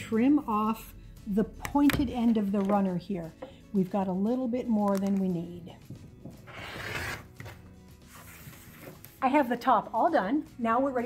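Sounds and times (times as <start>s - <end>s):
faint background music: 0.0s - 11.0s
rotary cutter slicing fabric: 6.5s - 7.4s.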